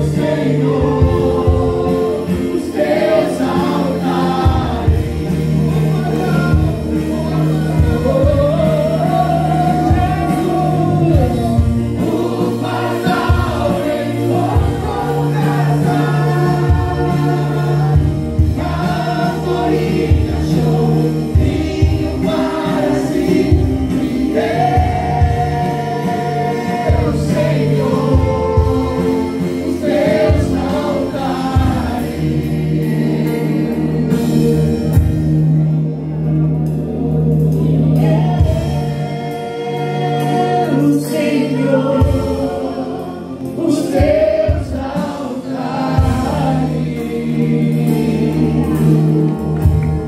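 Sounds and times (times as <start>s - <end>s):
woman and man singing: 0.0s - 34.6s, 37.6s - 49.6s
band accompanying: 0.0s - 50.0s.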